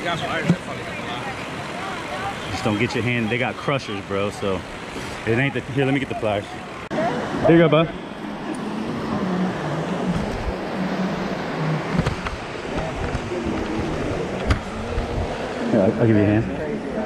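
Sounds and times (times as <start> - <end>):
low voices talking: 0.0 - 17.0
surf breaking: 0.0 - 17.0
wind: 0.0 - 17.0.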